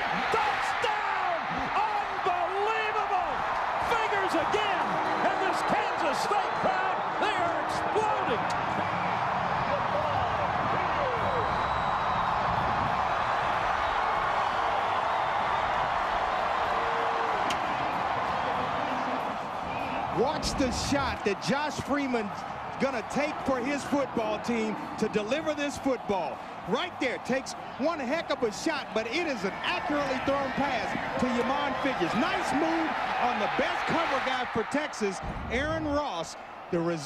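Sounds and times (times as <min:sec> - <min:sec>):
stadium crowd roaring: 0:00.0 - 0:37.0.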